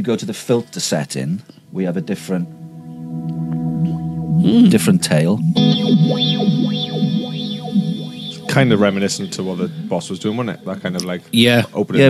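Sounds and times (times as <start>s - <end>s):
ambient guitar pad with filter sweep: 1.7s - 11.4s.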